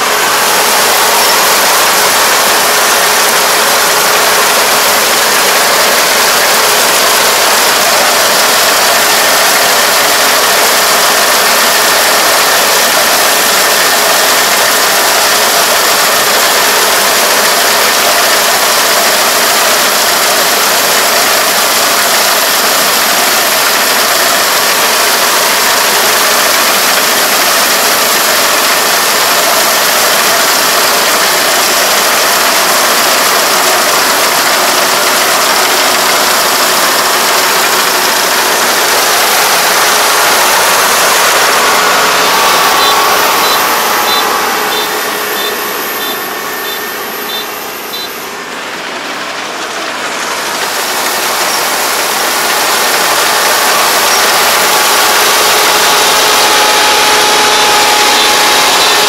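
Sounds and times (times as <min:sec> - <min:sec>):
combine harvester running: 0:00.0 - 0:59.0
faint machine whine: 0:00.0 - 0:59.0.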